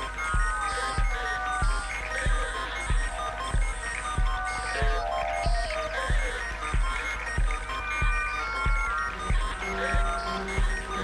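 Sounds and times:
low kick drum: 0.0s - 11.0s.

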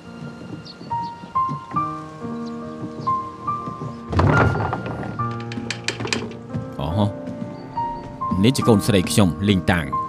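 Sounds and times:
background music: 0.0s - 10.0s
light knocks: 0.5s - 6.7s
wooden door shoved open: 4.1s - 6.4s.

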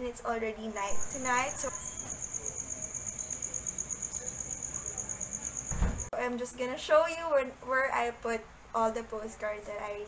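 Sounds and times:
cricket trilling: 0.9s - 6.1s
short low thump: 5.7s - 6.1s.

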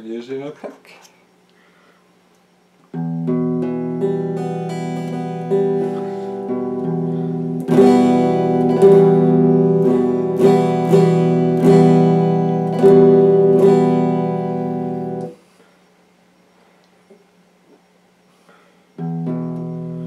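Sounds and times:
electric guitar picked notes: 2.9s - 15.4s, 19.0s - 20.0s.

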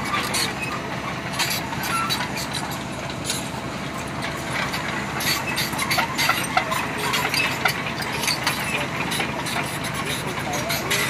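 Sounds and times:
excavator diesel engine running: 0.0s - 11.0s
track undercarriage clanking: 0.0s - 11.0s.

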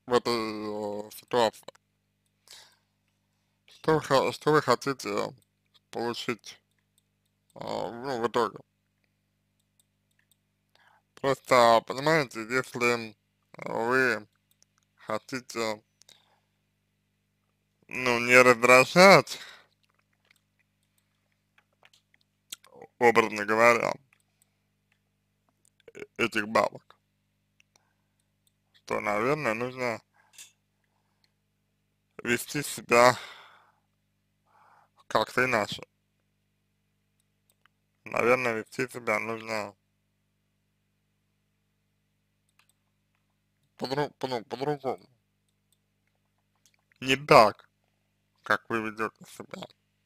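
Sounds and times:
man speaking: 0.0s - 1.8s, 3.7s - 6.6s, 7.6s - 8.6s, 11.2s - 14.2s, 15.0s - 15.8s, 17.9s - 19.6s, 22.5s - 24.0s, 25.8s - 26.9s, 28.8s - 30.0s, 32.2s - 33.4s, 35.1s - 35.8s, 38.1s - 39.7s, 43.8s - 45.0s, 47.0s - 47.6s, 48.5s - 49.7s
faint low hum: 0.0s - 50.0s
tiny clicks: 8.9s - 10.8s
short breath: 33.2s - 33.9s, 34.5s - 34.9s.

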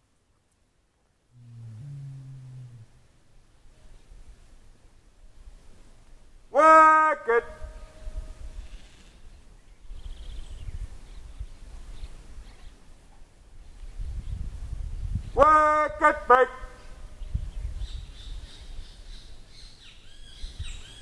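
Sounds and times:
faint wind rumble: 7.3s - 21.0s.

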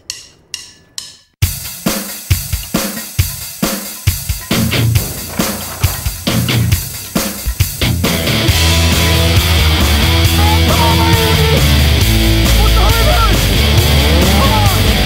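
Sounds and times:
rock drum kit with heavy bass: 1.4s - 15.0s
sharp drum hits: 4.4s - 9.0s.

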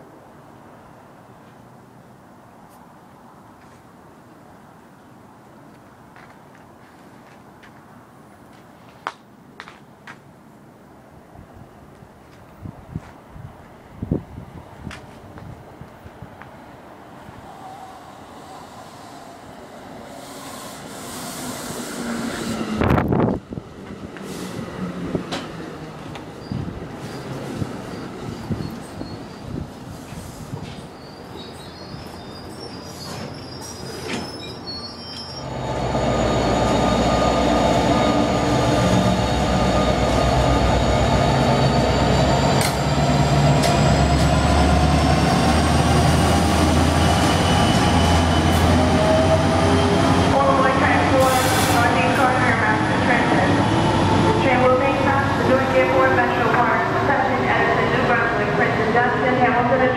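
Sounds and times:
train rumbling and clicking: 11.8s - 16.6s, 20.8s - 59.9s
train passing with rising whine: 15.6s - 59.9s
rail crackle and squeal: 17.3s - 23.1s, 24.2s - 59.9s.

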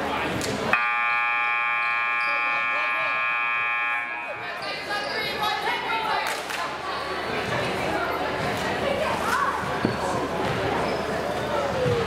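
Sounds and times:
crowd chatter: 0.0s - 12.0s
scoreboard buzzer: 0.8s - 4.8s.

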